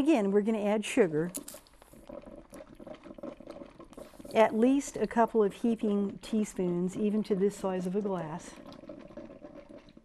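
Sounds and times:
coffee maker gurgling: 0:00.0 - 0:10.0.

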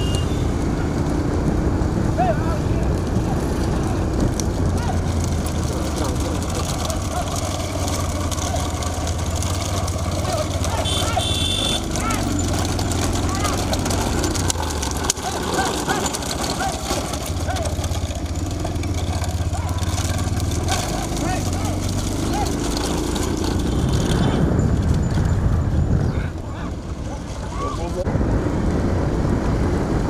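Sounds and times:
wind buffeting microphone: 0:00.0 - 0:10.8, 0:21.3 - 0:30.0
vehicle engine running: 0:00.0 - 0:30.0
people shouting: 0:04.7 - 0:05.2, 0:06.0 - 0:07.7, 0:10.1 - 0:13.8, 0:15.2 - 0:17.9, 0:20.9 - 0:22.7, 0:27.4 - 0:28.0.

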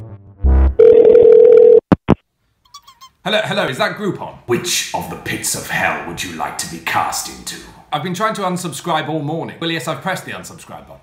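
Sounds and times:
electronic music bass hit: 0:00.0 - 0:00.8
telephone line tone with hiss: 0:00.8 - 0:01.8.

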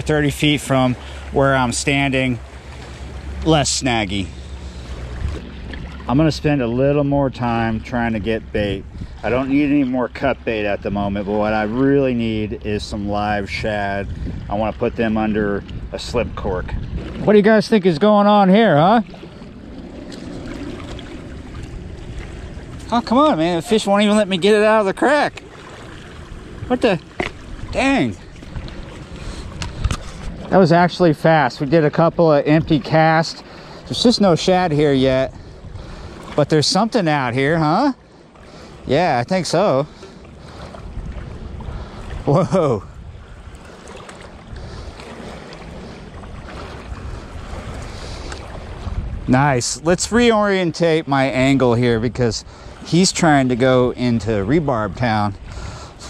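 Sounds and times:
river water lapping against bank: 0:00.0 - 0:56.0
steady wind: 0:00.0 - 0:56.0.

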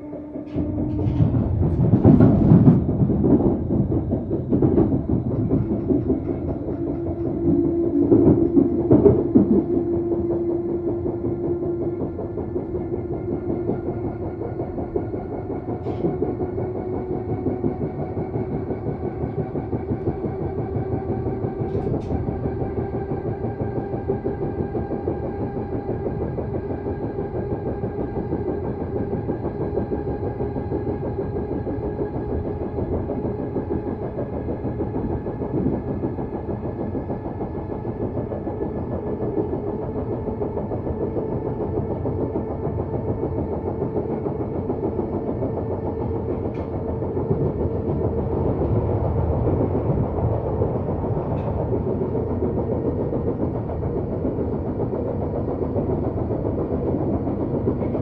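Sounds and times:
traction motor whine: 0:00.0 - 0:58.0
train wheels rolling on rail: 0:00.0 - 0:58.0.

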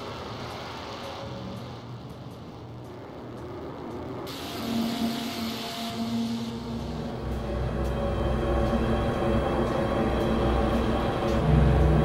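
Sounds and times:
low drone tone: 0:00.0 - 0:12.0.

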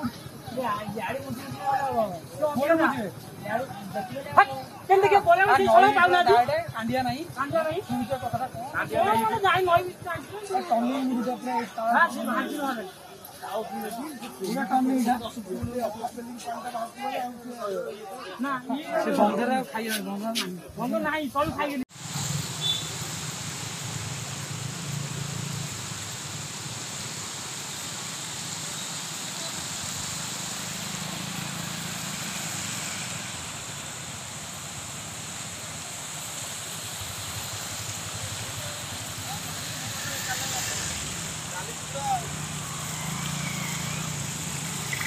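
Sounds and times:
outdoor rushing noise: 0:21.9 - 0:45.0.

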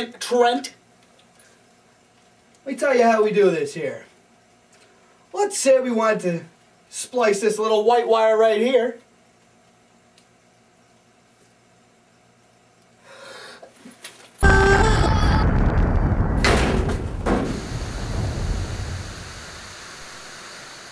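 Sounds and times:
loud explosion: 0:14.4 - 0:20.4
static hiss: 0:15.4 - 0:20.9.

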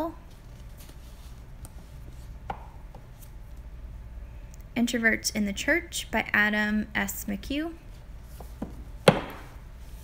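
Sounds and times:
faint room hum: 0:00.0 - 0:10.0
books knocking on shelf: 0:08.4 - 0:09.6.

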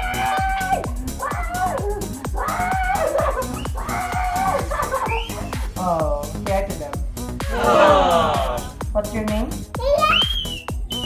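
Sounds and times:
dance music with steady beat: 0:04.6 - 0:09.7, 0:10.6 - 0:11.0.

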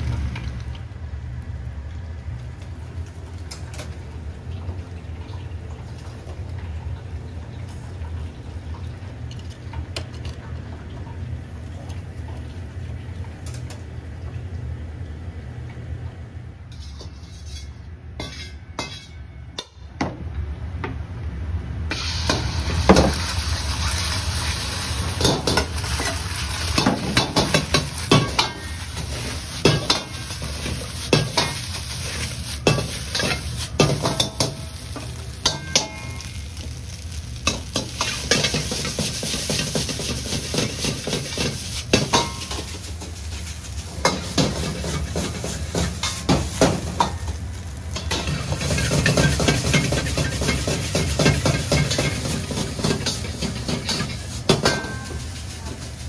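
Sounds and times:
gas burner rumble: 0:00.0 - 0:56.0
metal ladle scraping a wok: 0:16.7 - 0:19.2, 0:25.2 - 0:34.6
egg and rice sizzling in oil: 0:21.9 - 0:56.0.

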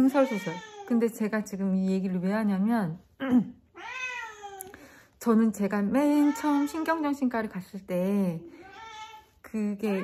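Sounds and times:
cat meowing: 0:03.7 - 0:04.6.

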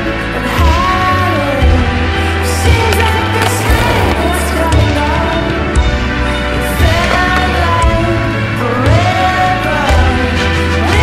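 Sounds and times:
loud background music: 0:00.0 - 0:11.0
skateboard rolling on asphalt: 0:02.2 - 0:08.7
skateboard clacks: 0:02.7 - 0:05.4, 0:06.8 - 0:08.0
skateboard grinding on metal bar: 0:02.9 - 0:04.7.

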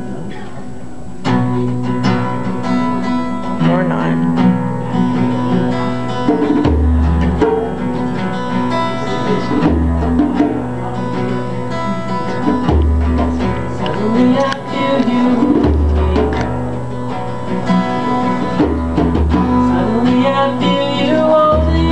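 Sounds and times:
acoustic guitar playing: 0:00.0 - 0:21.9.

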